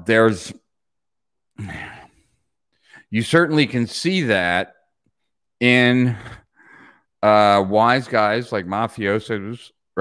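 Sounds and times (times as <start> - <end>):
man sighing: 1.6 - 2.3.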